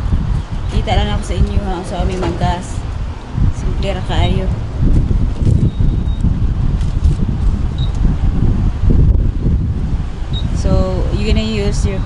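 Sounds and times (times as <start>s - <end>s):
wind buffeting microphone: 0.0s - 12.0s
faint high beeps: 7.8s - 8.0s.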